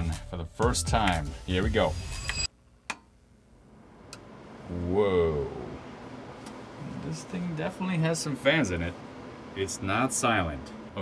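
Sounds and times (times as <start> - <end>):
background music: 0.0 - 2.5
computer fans hissing: 3.7 - 11.0.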